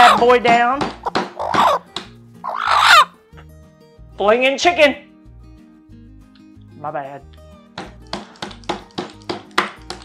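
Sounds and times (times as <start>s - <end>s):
chicken squawk: 0.0s - 0.2s, 1.4s - 1.8s, 2.4s - 3.2s.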